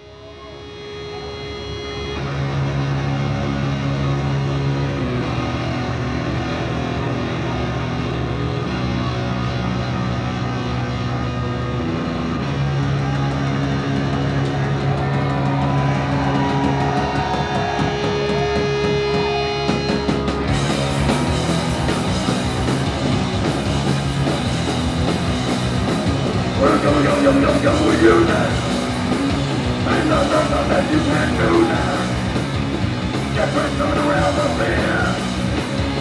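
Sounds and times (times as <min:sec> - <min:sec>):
droning electric guitars: 0:00.0 - 0:36.0.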